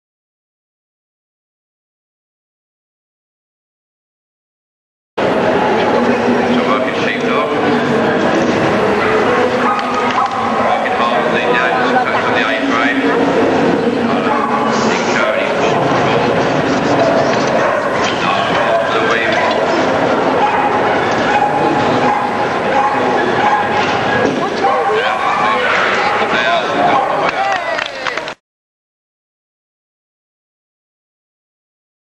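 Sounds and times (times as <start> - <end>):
crowd chatter: 5.2 - 28.4
voices: 5.2 - 28.4
dogs barking: 7.3 - 27.5.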